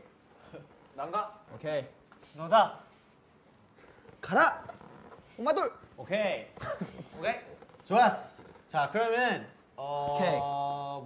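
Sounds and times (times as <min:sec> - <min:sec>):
man calling out: 0:09.8 - 0:11.0.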